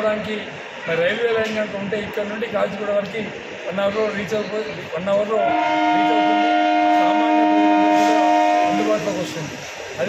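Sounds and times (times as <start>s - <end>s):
train horn blast: 5.4s - 9.2s.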